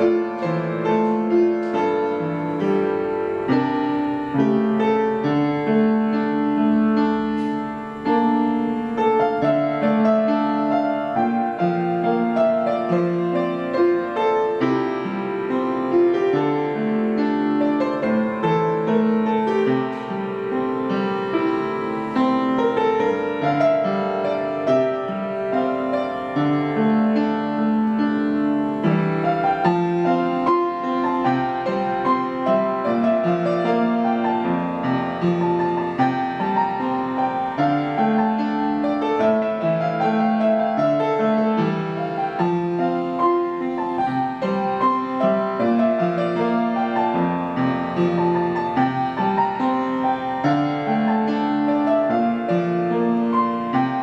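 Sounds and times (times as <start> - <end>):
solo piano playing pop song: 0.0 - 54.0.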